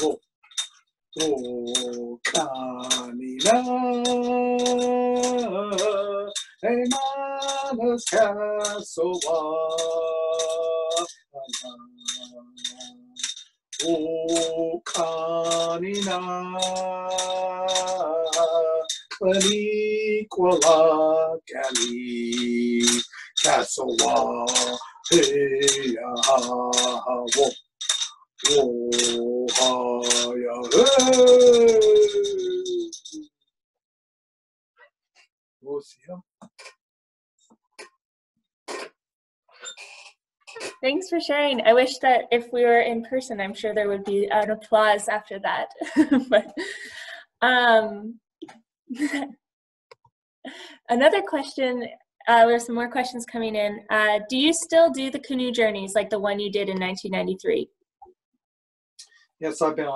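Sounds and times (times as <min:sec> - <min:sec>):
man singing chant-like notes: 0:01.2 - 0:13.2, 0:13.8 - 0:27.6, 0:28.4 - 0:33.2.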